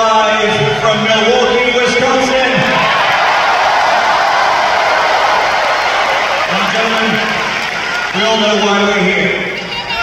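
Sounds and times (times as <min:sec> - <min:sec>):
arena crowd cheering and shouting: 0:00.0 - 0:10.0.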